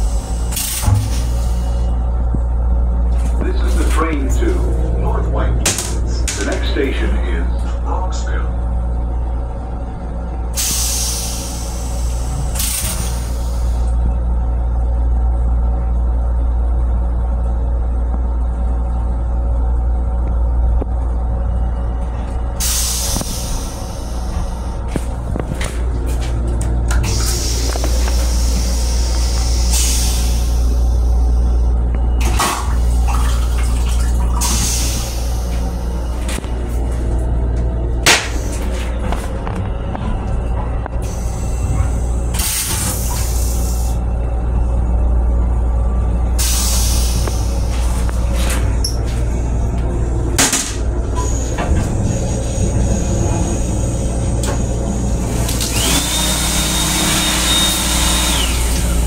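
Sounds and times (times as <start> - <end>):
electric railcar rumble: 0.0 - 59.0
steady high whine: 0.0 - 59.0.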